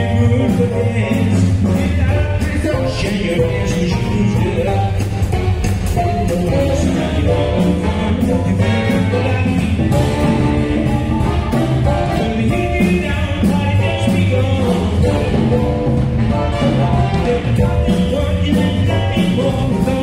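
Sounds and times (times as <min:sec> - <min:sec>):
drum kit beat: 0:00.0 - 0:20.0
saxophones: 0:03.0 - 0:13.2.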